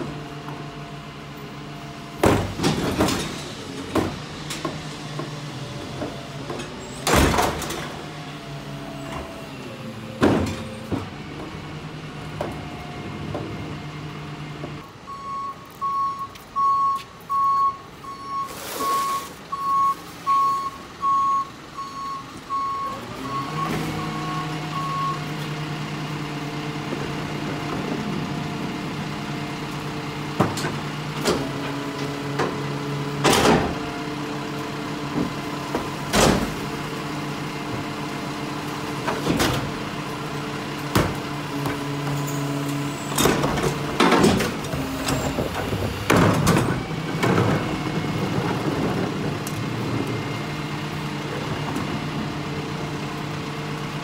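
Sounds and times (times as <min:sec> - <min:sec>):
garbage truck engine hum: 0:00.0 - 0:15.8, 0:17.1 - 0:54.0
truck backup beeper: 0:14.8 - 0:25.6.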